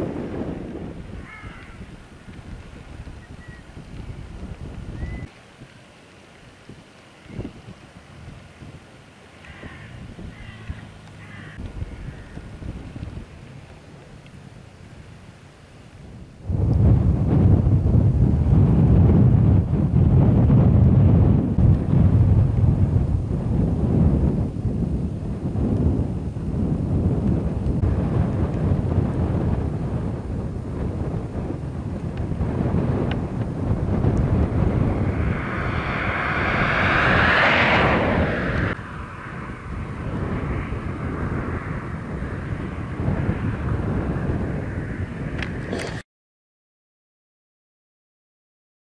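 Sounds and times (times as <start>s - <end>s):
wind buffeting microphone: 0.0s - 46.0s
higher rushing noise: 33.2s - 45.3s.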